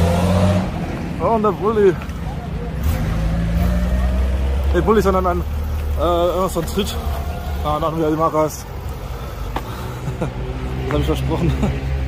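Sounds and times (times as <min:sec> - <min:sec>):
vehicle engine rumble: 0:00.0 - 0:12.0
person laughing: 0:09.7 - 0:10.6, 0:11.4 - 0:11.9.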